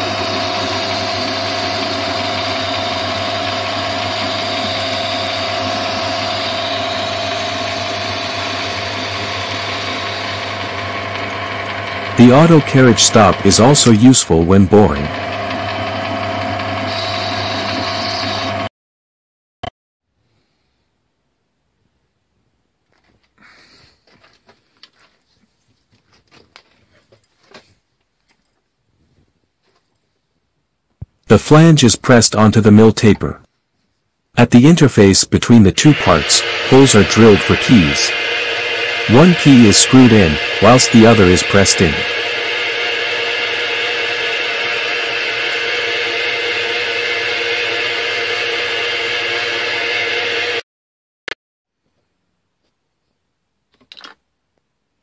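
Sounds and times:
milling machine whirring: 0:00.0 - 0:18.7, 0:35.6 - 0:50.6.

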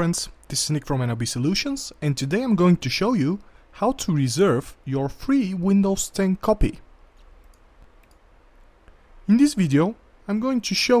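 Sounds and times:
low room hum: 0:00.0 - 0:11.0
faint clicks: 0:07.2 - 0:09.0.

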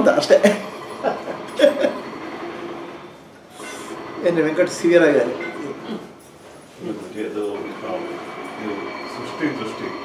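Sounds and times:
man laughing: 0:01.0 - 0:02.0.

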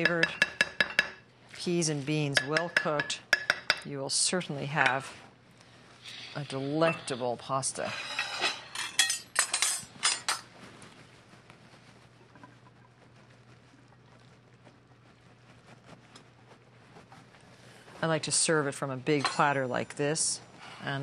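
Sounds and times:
utensils clattering against bowl: 0:07.8 - 0:10.5.

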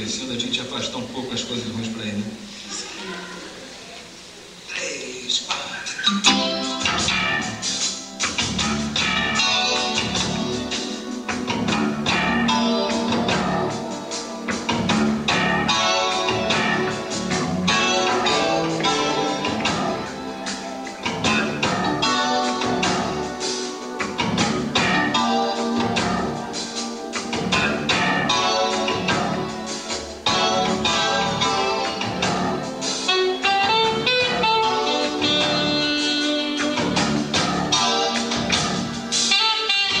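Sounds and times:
drum kit: 0:06.1 - 0:40.0
keyboard chords: 0:06.1 - 0:40.0.

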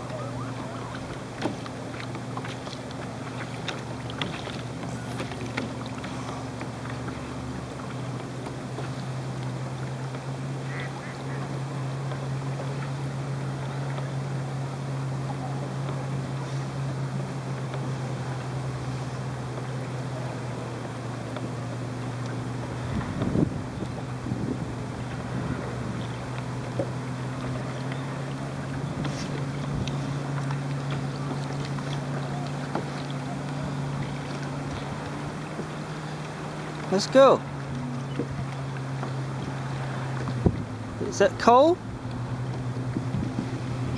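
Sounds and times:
water noise: 0:00.0 - 0:43.9.

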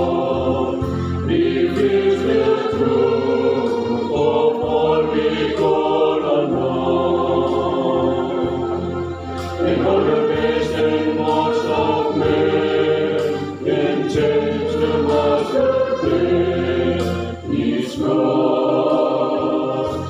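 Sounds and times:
choir singing harmonised lines: 0:00.0 - 0:20.0.

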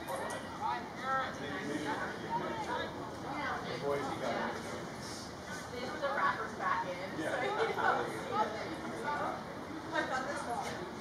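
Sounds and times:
outdoor background noise: 0:00.0 - 0:11.0
people chattering and calling: 0:00.0 - 0:11.0.

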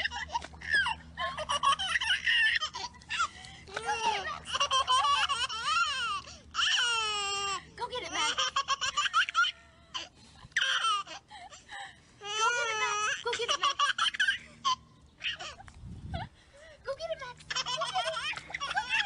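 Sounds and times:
woman laughing: 0:00.0 - 0:06.1, 0:08.0 - 0:14.6, 0:17.5 - 0:19.0
toddler laughing: 0:00.0 - 0:11.6, 0:12.2 - 0:16.3, 0:17.4 - 0:19.0.

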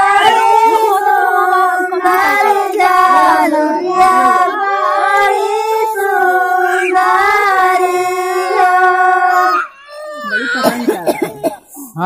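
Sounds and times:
group of voices singing folk song: 0:00.0 - 0:09.7.

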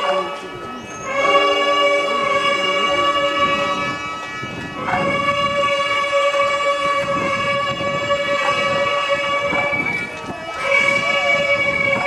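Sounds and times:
long reedy wind note: 0:00.0 - 0:12.0.

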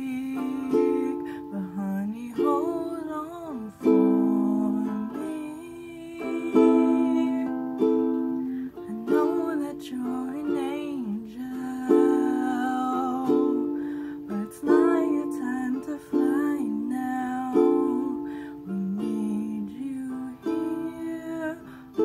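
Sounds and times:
woman singing softly: 0:00.0 - 0:22.0.

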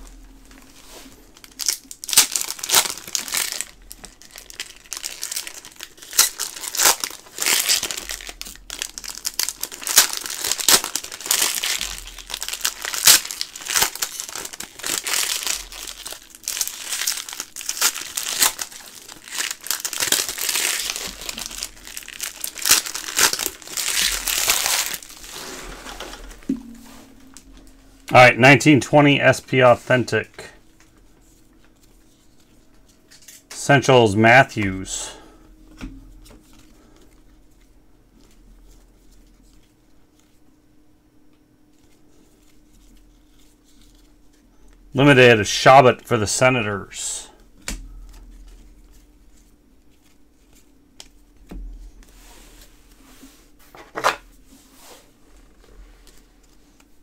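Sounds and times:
foil wrappers crinkling: 0:00.5 - 0:26.5, 0:41.8 - 0:44.5
packs being torn open: 0:01.4 - 0:25.4.

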